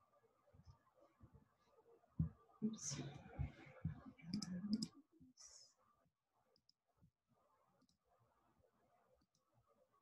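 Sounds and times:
computer mouse clicking: 0:04.3 - 0:05.0.

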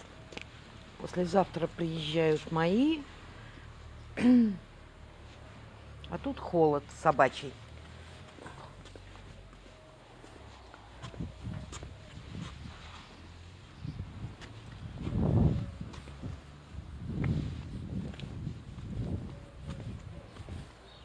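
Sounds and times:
footsteps on concrete: 0:06.4 - 0:13.4, 0:14.1 - 0:21.0.

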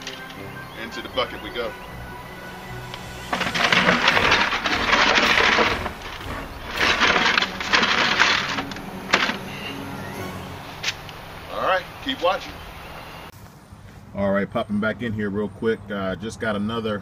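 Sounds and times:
background music: 0:00.0 - 0:13.3.

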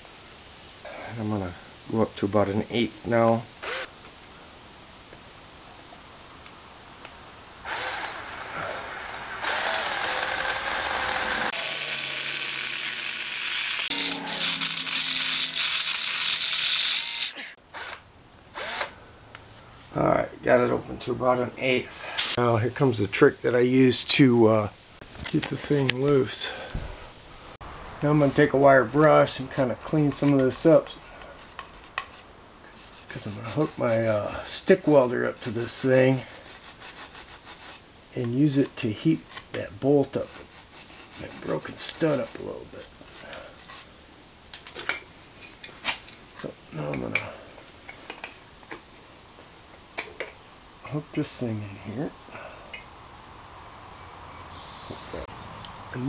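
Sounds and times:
electric drill whining into metal: 0:07.0 - 0:18.9
wire brush scrubbing metal: 0:11.1 - 0:17.4, 0:31.4 - 0:37.8, 0:40.1 - 0:42.6.

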